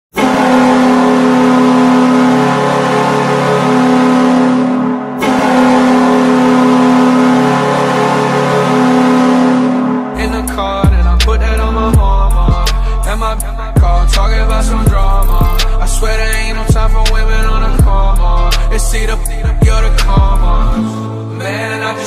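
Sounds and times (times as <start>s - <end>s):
arena goal horn blasts: 0.1s - 11.9s.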